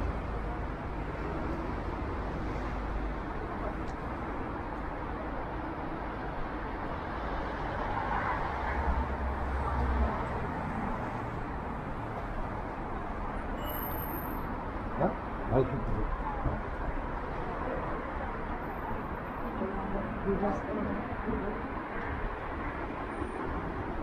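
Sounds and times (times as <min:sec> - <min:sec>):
city street traffic: 0:00.0 - 0:24.0.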